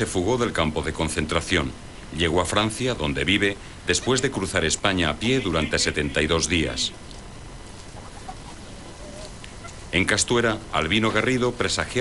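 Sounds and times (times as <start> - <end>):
faint background noise: 0.0 - 12.0
soft short animal calls: 7.9 - 9.8.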